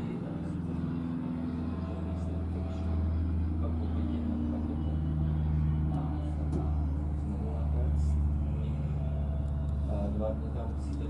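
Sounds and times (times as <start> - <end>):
faint voices talking: 0.0 - 11.0
steady low hum: 0.0 - 11.0.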